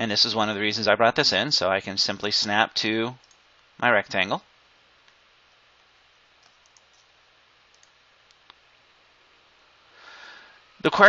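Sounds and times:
faint computer mouse clicks: 0:06.4 - 0:07.1, 0:07.7 - 0:08.6.

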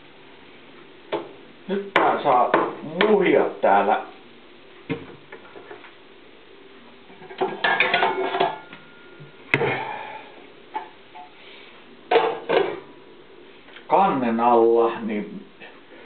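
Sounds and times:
cookware and utensils clattering: 0:07.1 - 0:10.0, 0:12.1 - 0:12.8.

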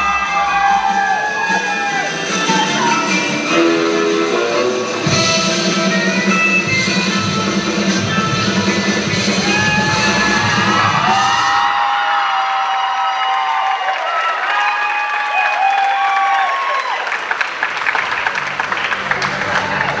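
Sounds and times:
audience cheering and whooping: 0:00.0 - 0:03.3, 0:09.2 - 0:18.3
band music: 0:00.0 - 0:11.7
applause: 0:11.6 - 0:20.0.

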